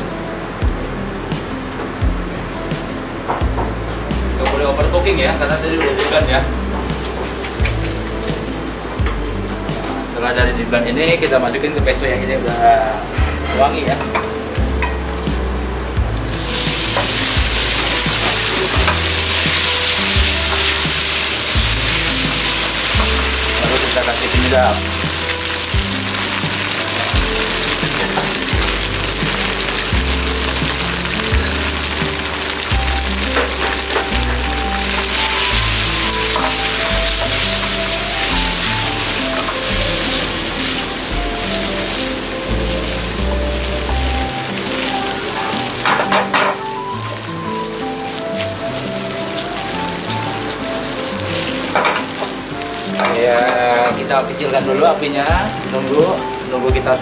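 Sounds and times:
background music: 0.0 - 57.0
pasta sizzling in a pan: 16.2 - 57.0
utensils clicking on pan: 16.8 - 40.8, 51.4 - 55.0.

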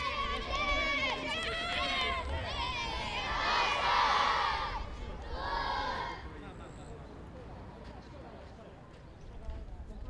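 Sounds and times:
boys shouting and cheering: 0.0 - 6.2.

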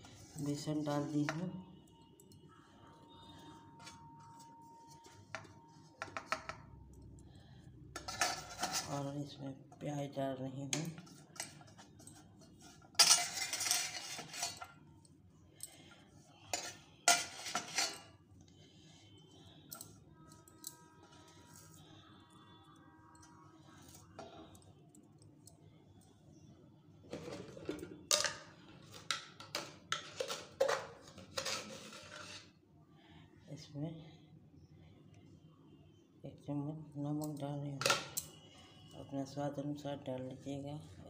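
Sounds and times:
utensils clinking against steel bowl: 8.0 - 9.1, 10.7 - 18.2, 27.1 - 32.4, 37.2 - 38.4.

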